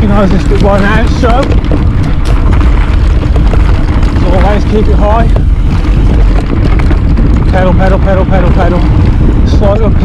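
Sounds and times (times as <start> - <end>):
bike knocks and rattles: 0.0 - 10.0
tyres rumbling on dirt trail: 0.0 - 10.0
wind buffeting microphone: 0.0 - 10.0.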